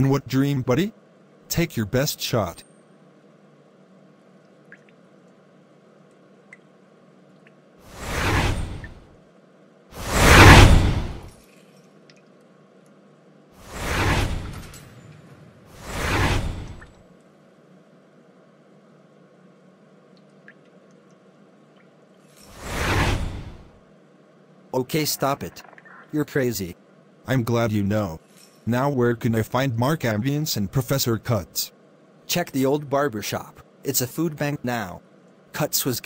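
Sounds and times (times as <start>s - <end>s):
whoosh sound effects: 7.9s - 9.0s, 10.0s - 11.3s, 13.6s - 14.7s, 15.7s - 16.9s, 22.5s - 23.7s.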